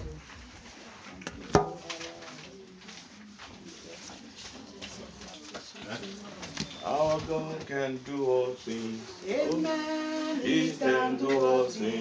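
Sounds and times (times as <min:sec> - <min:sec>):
faint human voices: 0:00.0 - 0:07.8.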